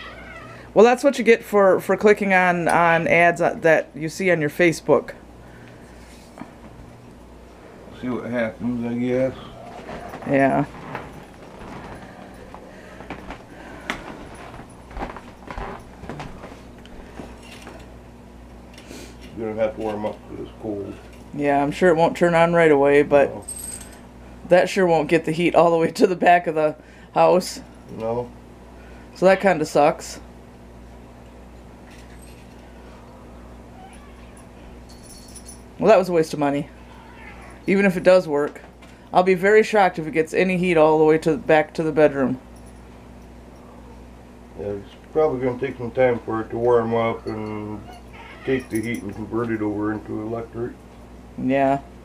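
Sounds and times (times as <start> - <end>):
faint cat meow: 0.0 - 0.7, 33.7 - 34.8, 36.8 - 37.7, 47.8 - 48.9
low steady hum: 0.0 - 52.0
footsteps: 9.4 - 17.8
handling noise: 9.5 - 18.0.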